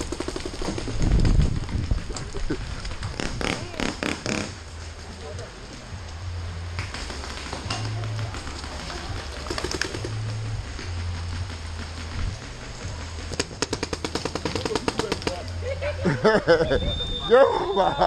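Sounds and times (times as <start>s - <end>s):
low hum: 0.0s - 18.0s
paintball markers firing: 3.1s - 4.6s, 13.3s - 15.6s.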